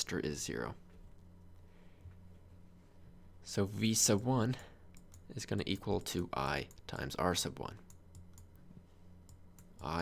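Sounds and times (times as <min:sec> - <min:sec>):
low steady hum: 0:00.0 - 0:10.0
person speaking: 0:09.6 - 0:10.0.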